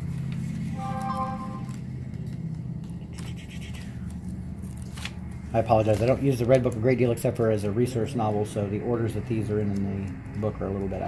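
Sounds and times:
paper pages rustling: 0:00.0 - 0:07.1
short tone: 0:00.7 - 0:01.8.

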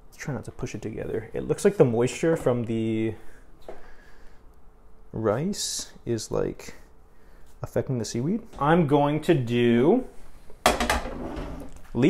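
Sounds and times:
kitchen items clattering: 0:10.6 - 0:11.8.

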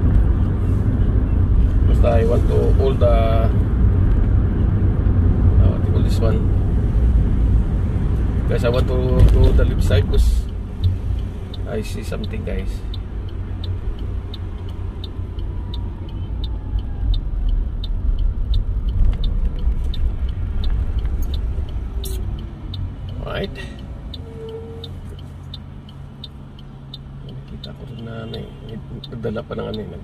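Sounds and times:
car engine and road rumble: 0:00.0 - 0:30.0
turn signal clicking: 0:08.0 - 0:30.0.

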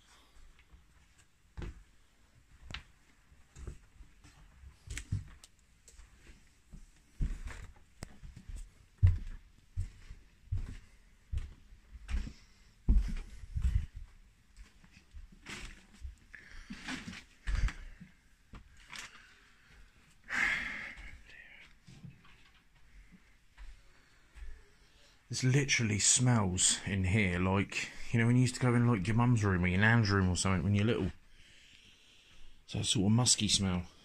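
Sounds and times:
footsteps thudding: 0:08.3 - 0:14.1.

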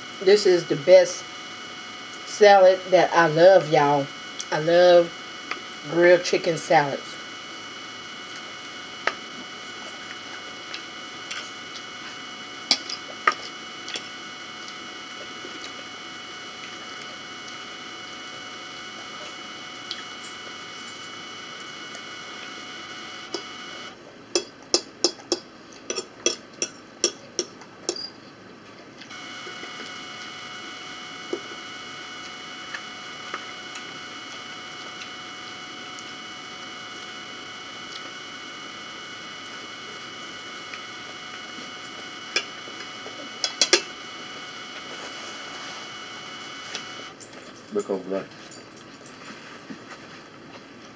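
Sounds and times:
steady room hum: 0:00.0 - 0:24.0, 0:28.7 - 0:47.6.

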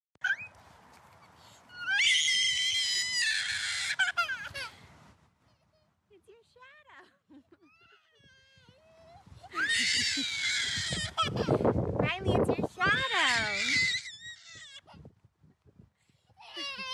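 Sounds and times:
toddler screaming: 0:01.7 - 0:04.7, 0:07.8 - 0:11.6, 0:13.0 - 0:14.9.

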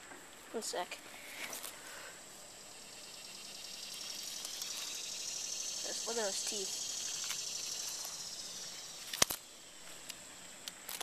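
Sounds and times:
shrill insect buzzing: 0:02.5 - 0:09.9.

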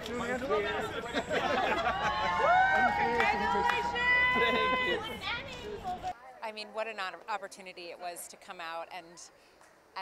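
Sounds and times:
excited voices chattering: 0:00.0 - 0:06.2.

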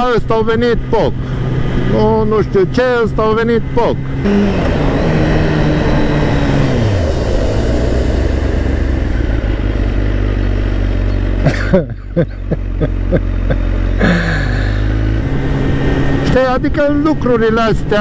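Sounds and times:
motorcycle engine: 0:00.0 - 0:18.0.

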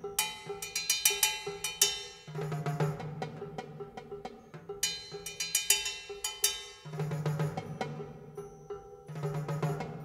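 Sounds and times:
ringing metallic percussion hits: 0:00.0 - 0:10.0.

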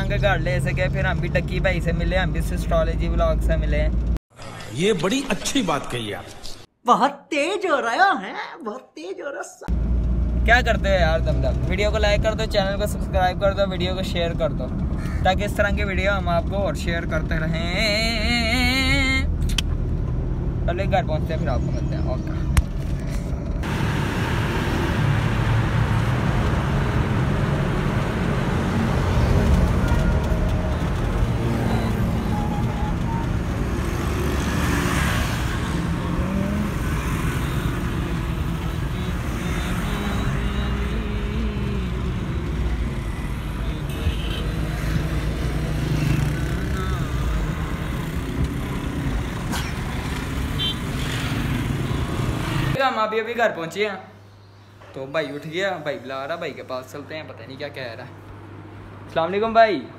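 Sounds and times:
car engine and road noise: 0:00.0 - 0:04.3, 0:09.7 - 0:52.8, 0:55.6 - 0:59.8.

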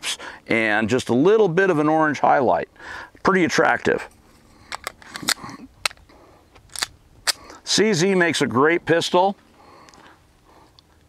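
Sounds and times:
pistol mechanical clicks: 0:04.7 - 0:07.6.

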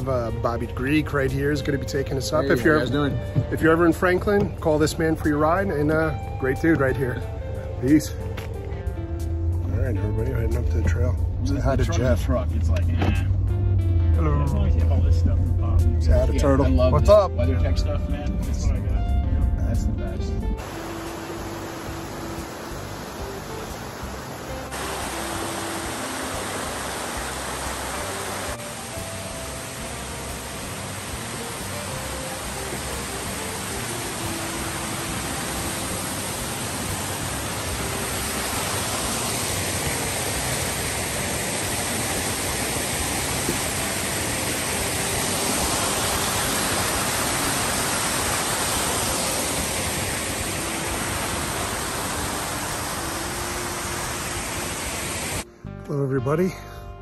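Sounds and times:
quiet background music: 0:00.0 - 0:57.0
rushing creek water: 0:20.6 - 0:55.5.

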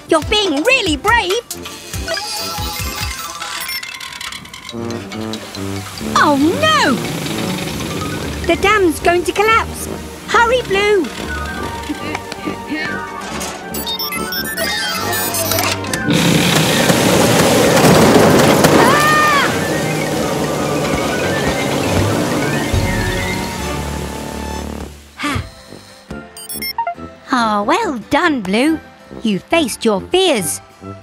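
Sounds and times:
cartoon background music: 0:00.0 - 0:16.9, 0:18.8 - 0:31.0
water rushing and crashing: 0:05.0 - 0:13.7, 0:16.1 - 0:25.2.

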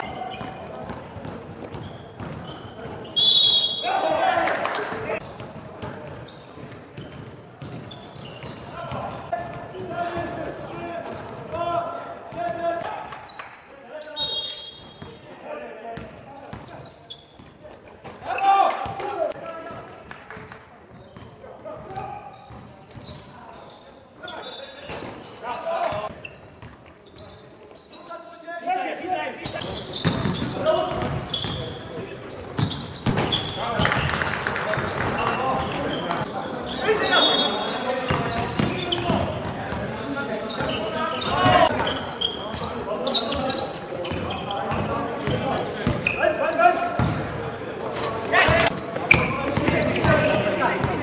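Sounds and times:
basketball bouncing on hardwood court: 0:00.3 - 0:02.5, 0:30.0 - 0:31.6.

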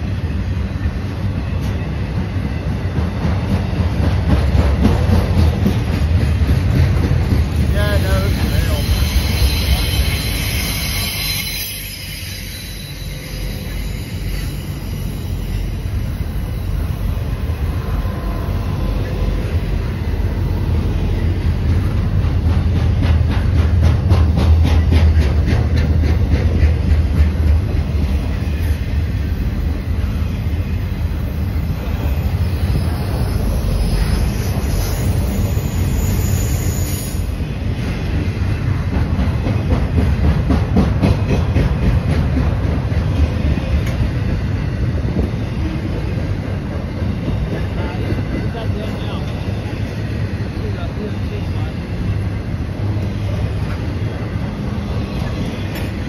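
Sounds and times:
freight train rumbling past: 0:00.0 - 0:56.0
high wheel squeal: 0:07.9 - 0:19.7, 0:28.2 - 0:37.6.

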